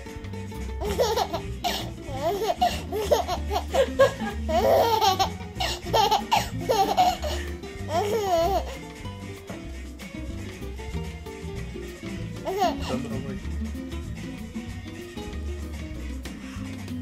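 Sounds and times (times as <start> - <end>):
background music with bass line: 0.0 - 17.0
baby laughing: 0.8 - 9.0, 12.2 - 13.2.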